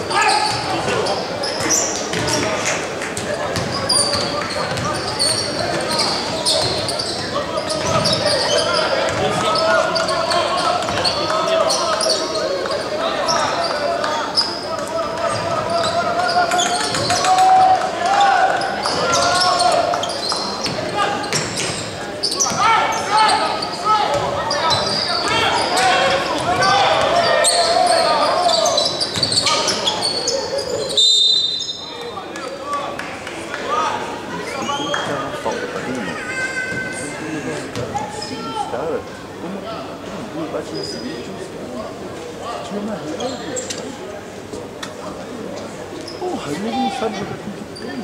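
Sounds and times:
indistinct shouts and chatter: 0:00.0 - 0:48.0.

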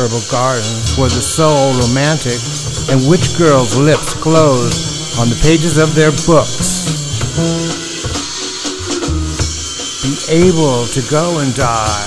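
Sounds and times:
drums: 0:00.2 - 0:12.0
bass line: 0:00.7 - 0:10.9
short held notes: 0:00.8 - 0:09.7.

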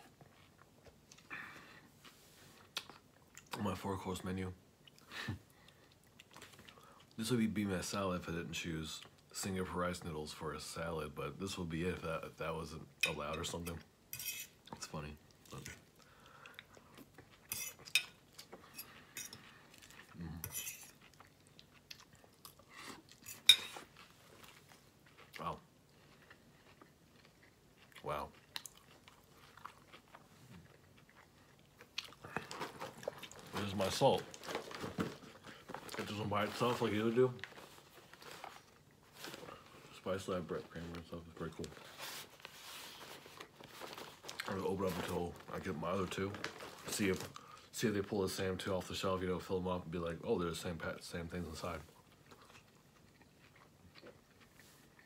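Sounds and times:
metal utensil scraping a bowl: 0:14.2 - 0:14.6, 0:20.4 - 0:20.9
crunchy chewing: 0:15.5 - 0:33.7, 0:51.9 - 0:55.0.

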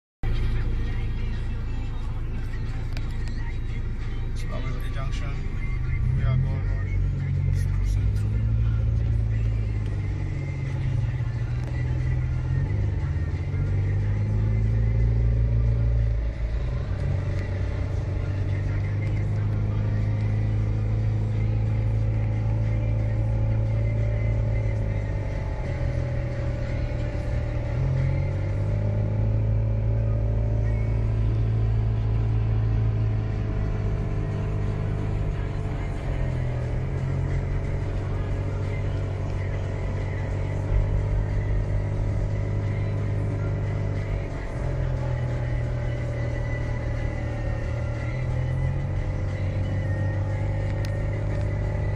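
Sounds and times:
car engine: 0:00.2 - 0:51.9
road rumble: 0:00.2 - 0:51.9.

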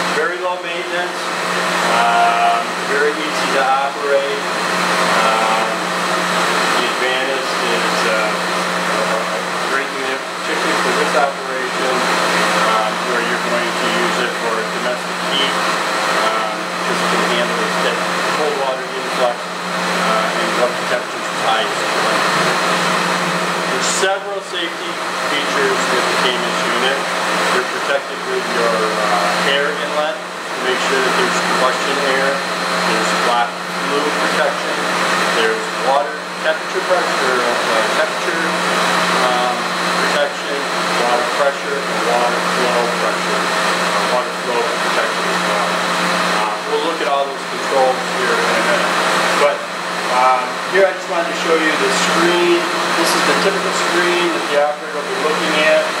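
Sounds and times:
man talking: 0:00.0 - 0:06.0, 0:06.6 - 0:22.6, 0:23.6 - 0:56.0
steady mechanical hum: 0:00.0 - 0:56.0.

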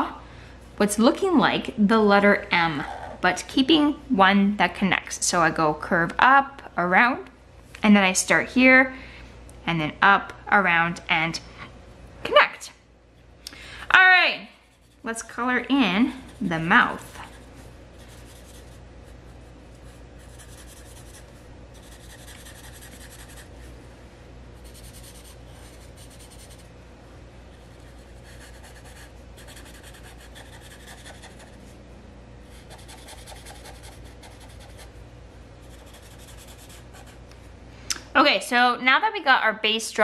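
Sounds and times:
marker scribbling on paper: 0:18.0 - 0:18.8, 0:19.8 - 0:23.5, 0:24.6 - 0:26.6, 0:27.6 - 0:31.6, 0:32.6 - 0:34.9, 0:35.6 - 0:37.2.

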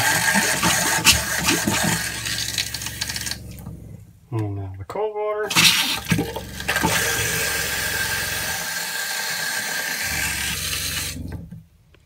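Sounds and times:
faucet running into sink: 0:00.0 - 0:03.4, 0:05.5 - 0:11.2
low hum: 0:00.0 - 0:08.6, 0:10.0 - 0:12.0.

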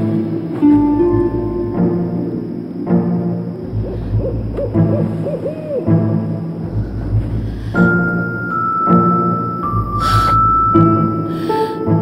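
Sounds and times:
low background music: 0:00.0 - 0:12.0
warbling owl hoots: 0:03.6 - 0:07.6.

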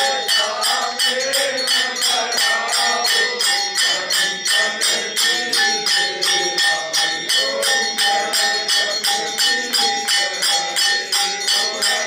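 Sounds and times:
ringing bell tone: 0:00.0 - 0:12.0
temple bells and jingling percussion: 0:00.0 - 0:12.0.

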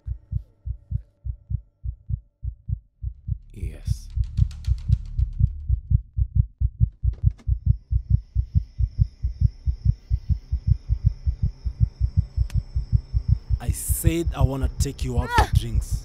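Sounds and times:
heartbeat thumps: 0:00.0 - 0:14.4, 0:15.2 - 0:16.0.

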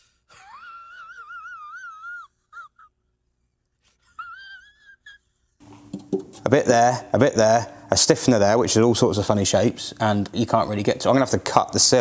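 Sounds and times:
person's wheezy whine: 0:00.0 - 0:03.0, 0:03.8 - 0:05.6.

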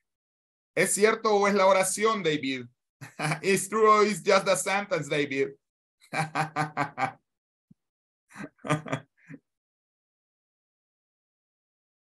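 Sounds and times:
person laughing: 0:03.0 - 0:03.6, 0:06.1 - 0:07.2, 0:08.4 - 0:09.4.

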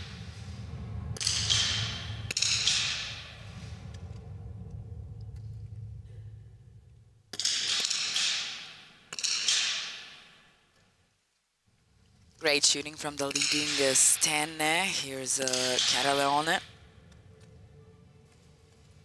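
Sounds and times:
low steady hum: 0:00.0 - 0:07.4, 0:11.6 - 0:19.0.

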